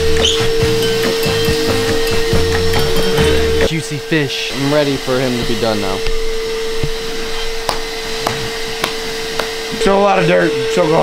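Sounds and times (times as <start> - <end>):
vacuum cleaner humming: 0.0 - 11.0.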